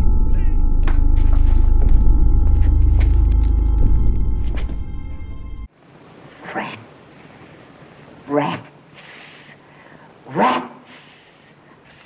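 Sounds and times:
faint steady hiss: 5.7 - 12.0.

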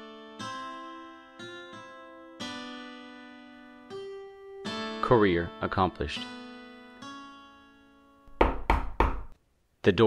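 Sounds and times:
knocks on wooden door: 8.3 - 9.4.

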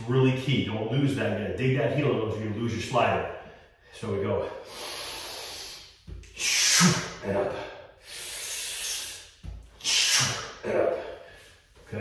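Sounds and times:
man breathing hard: 3.4 - 11.8.

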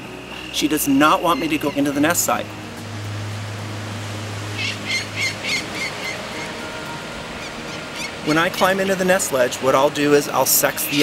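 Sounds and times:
low hum: 0.0 - 9.2
falcon alarm calls: 4.6 - 6.6.

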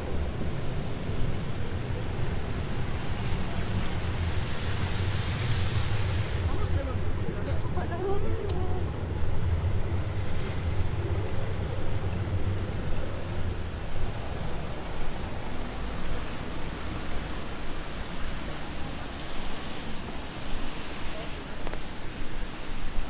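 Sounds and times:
tyres hissing on wet road: 0.0 - 23.0.

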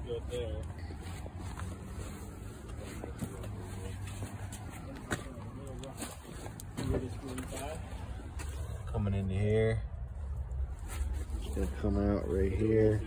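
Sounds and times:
faint voices: 0.0 - 9.0.

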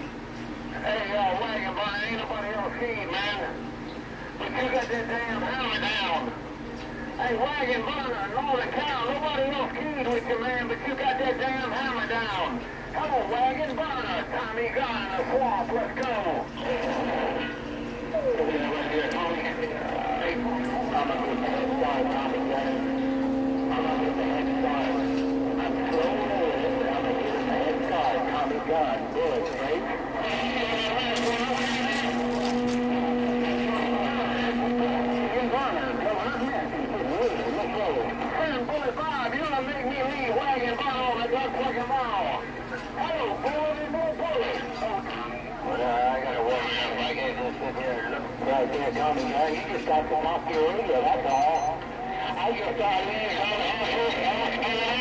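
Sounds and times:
steady humming tones: 0.0 - 55.0
garbled voices through radio speaker: 0.7 - 55.0.

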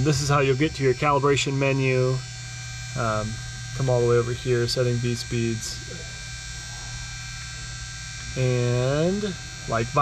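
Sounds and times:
electrical mains hum: 0.0 - 10.0
faint high steady tones: 0.0 - 10.0.

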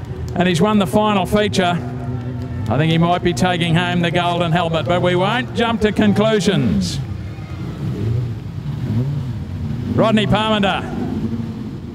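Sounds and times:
car engine running at low revs: 0.0 - 11.9.

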